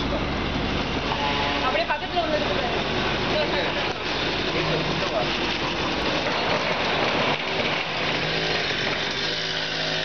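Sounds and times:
firework fountain hissing and crackling: 0:00.0 - 0:10.0.

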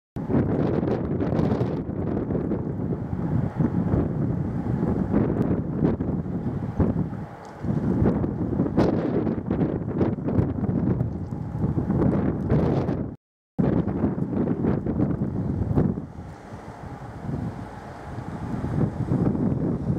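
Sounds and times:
wind gusting on microphone: 0:00.2 - 0:19.9.

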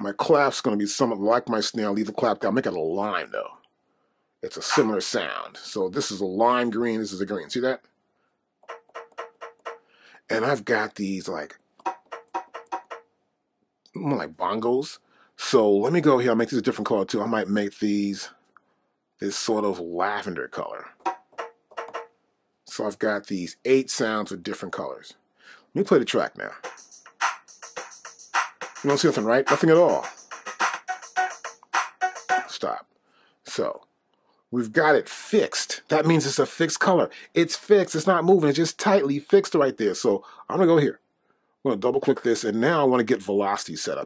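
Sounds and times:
fast hi-hat pattern: 0:04.6 - 0:05.1, 0:08.6 - 0:09.8, 0:11.8 - 0:13.0, 0:26.6 - 0:32.6
programmed drum beat: 0:04.7 - 0:05.2, 0:08.6 - 0:09.8, 0:11.8 - 0:13.1, 0:21.0 - 0:22.1, 0:26.6 - 0:32.6
pitched percussion hits: 0:08.6 - 0:09.8, 0:11.8 - 0:13.1, 0:21.1 - 0:22.1, 0:26.6 - 0:32.5.

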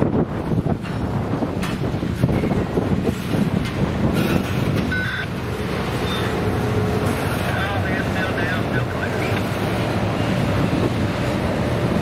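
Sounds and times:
steel wheels rumbling on rail: 0:00.0 - 0:12.0.

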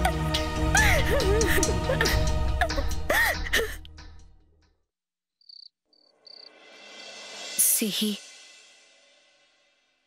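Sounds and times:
background music: 0:00.0 - 0:04.8, 0:06.6 - 0:09.5
cricket chirping: 0:05.4 - 0:06.5.

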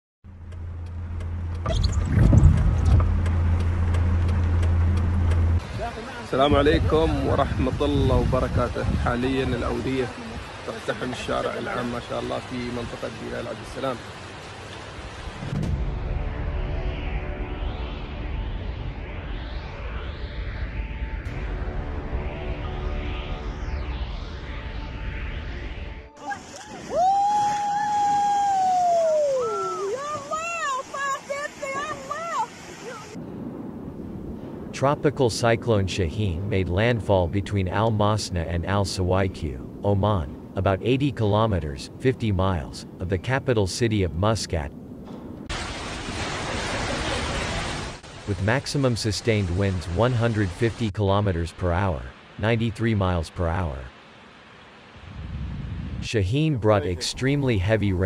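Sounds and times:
vehicle engine humming: 0:00.2 - 0:26.8
rushing floodwater: 0:05.6 - 0:15.6, 0:26.2 - 0:33.2, 0:45.5 - 0:54.9.

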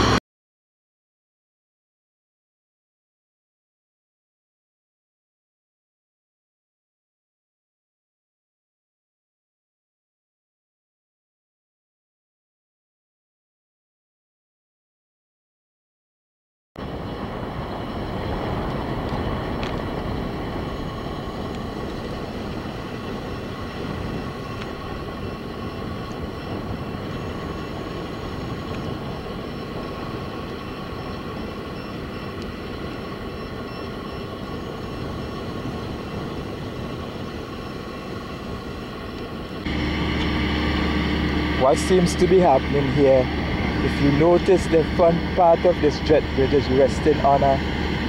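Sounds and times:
deep engine hum: 0:00.0 - 0:00.2, 0:16.8 - 0:48.0
diesel crane engines rumbling: 0:16.8 - 0:48.0.

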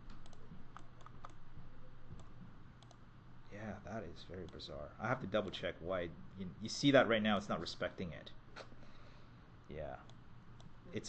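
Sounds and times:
computer mouse clicks: 0:00.0 - 0:01.4, 0:02.1 - 0:03.0, 0:04.4 - 0:04.6, 0:10.0 - 0:10.8
low steady hum: 0:00.0 - 0:11.0.

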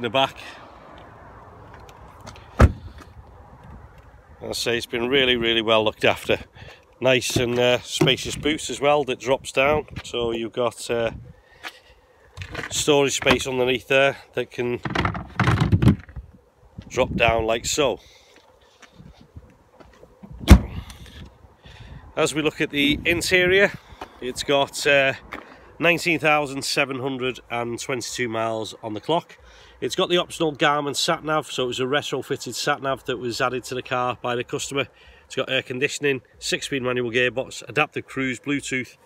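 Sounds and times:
car door thump: 0:02.5 - 0:03.0, 0:20.4 - 0:20.9.

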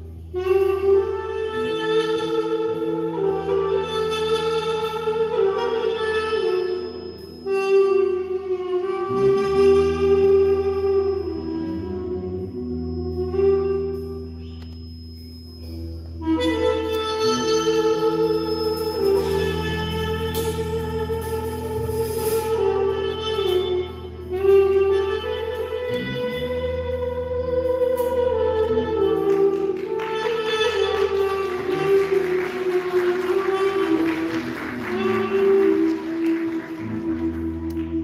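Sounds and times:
double-reed pipe melody: 0:00.0 - 0:38.0
steady low bass: 0:00.0 - 0:38.0.

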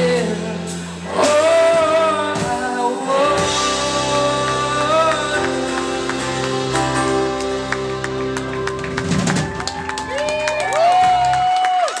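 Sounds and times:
audience clapping and cheering: 0:04.5 - 0:12.0.

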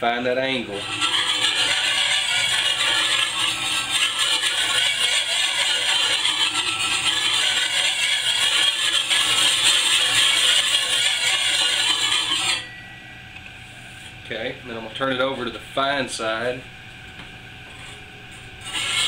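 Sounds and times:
sharpening stone scraping steel: 0:00.7 - 0:12.7, 0:18.6 - 0:19.0.

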